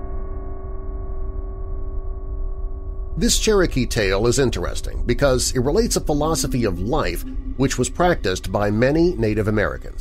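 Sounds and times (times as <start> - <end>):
synthesizer drone: 4.5 - 10.0
deep low rumble: 4.9 - 9.5.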